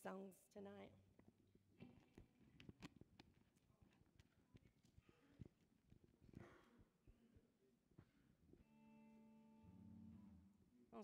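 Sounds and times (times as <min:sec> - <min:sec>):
faint held instrumental chord: 0:08.6 - 0:11.0.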